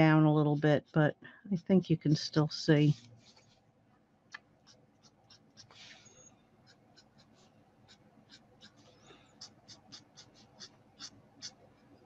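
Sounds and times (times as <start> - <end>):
marker scratching on cardstock: 4.6 - 6.0, 6.6 - 11.6.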